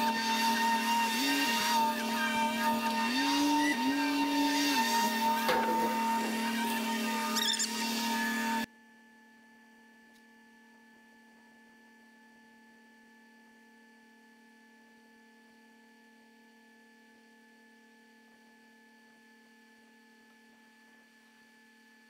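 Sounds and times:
machine engine and hydraulics: 2.9s - 8.7s
short squeal: 5.8s - 8.7s.

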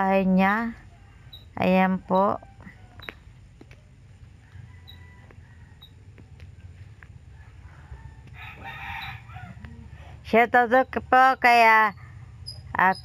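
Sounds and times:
low steady hum: 0.0s - 13.0s
rooster crowing: 4.3s - 6.3s, 7.3s - 10.2s.

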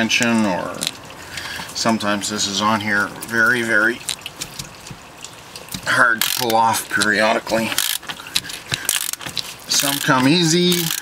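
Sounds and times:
ratchet wrench clicking: 6.2s - 6.6s, 7.7s - 8.0s, 8.9s - 11.0s.

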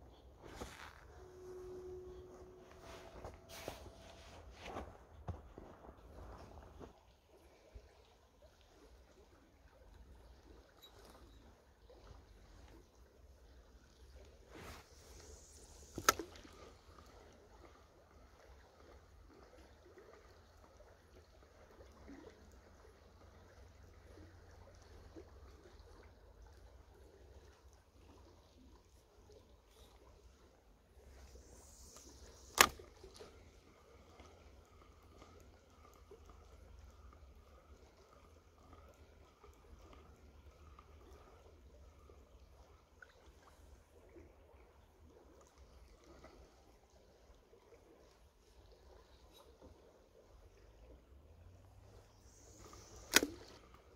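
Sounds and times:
river running: 0.0s - 53.9s
reel bail arm click: 15.8s - 16.4s, 31.6s - 33.3s, 52.5s - 53.8s
fishing rod swish: 31.2s - 33.3s, 52.4s - 53.8s.

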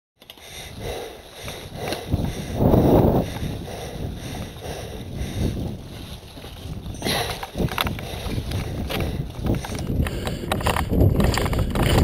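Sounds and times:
bike rumble: 0.2s - 12.0s
wind on microphone: 0.7s - 12.0s
bike clattering and knocking: 6.4s - 12.0s.

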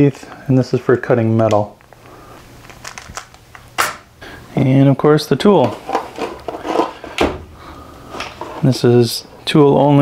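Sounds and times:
plastic scraping against cardboard: 5.6s - 7.2s.

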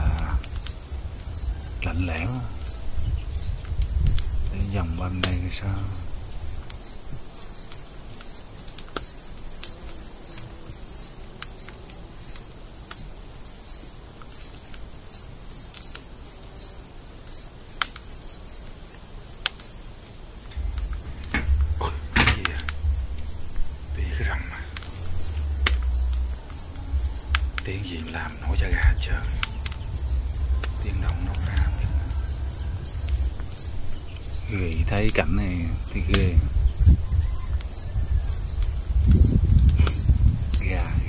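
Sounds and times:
low rumble on microphone: 0.0s - 7.7s, 20.5s - 41.0s
crickets chirping: 0.0s - 41.0s
high insect drone: 0.0s - 41.0s
sharp clicks: 5.2s - 5.4s, 20.4s - 36.3s.

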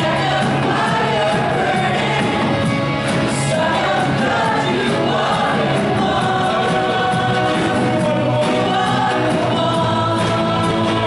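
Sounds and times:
backing vocalists singing: 0.0s - 11.0s
band with guitars and keyboard: 0.0s - 11.0s
drum kit beat: 0.0s - 11.0s
lead singer singing: 0.0s - 11.0s.

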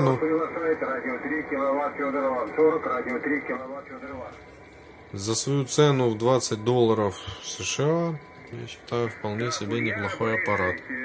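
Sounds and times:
muffled radio voice talking: 8.7s - 11.0s.

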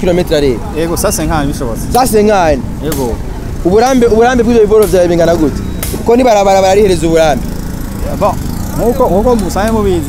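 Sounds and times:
man speaking: 0.0s - 10.0s.

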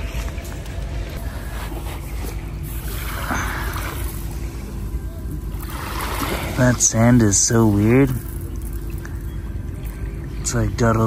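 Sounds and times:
distant boat engine hum: 0.0s - 11.0s.

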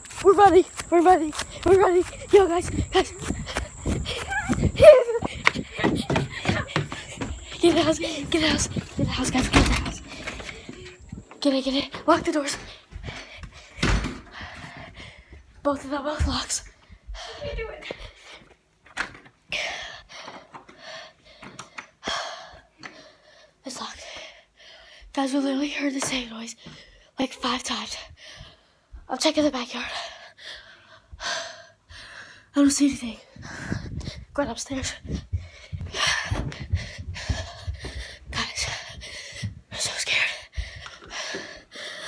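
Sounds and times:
close breathing: 0.0s - 9.2s, 9.8s - 11.3s, 12.5s - 15.6s, 19.5s - 25.2s, 28.0s - 29.0s, 29.8s - 42.0s
footsteps thumping up stairs: 0.0s - 15.5s, 16.1s - 19.2s, 33.5s - 41.7s.

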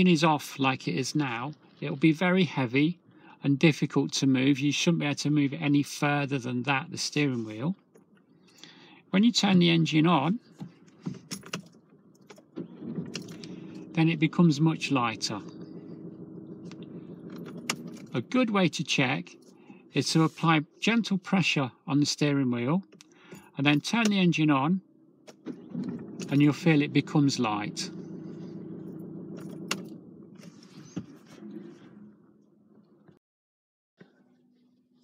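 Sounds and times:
car engine idling: 7.4s - 20.6s, 24.9s - 33.1s
keys jingling: 10.8s - 12.4s, 17.3s - 18.2s.

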